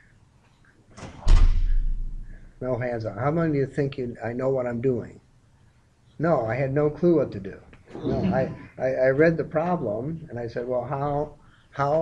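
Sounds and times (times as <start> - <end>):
heavy thump with deep boom: 1.3 - 2.3.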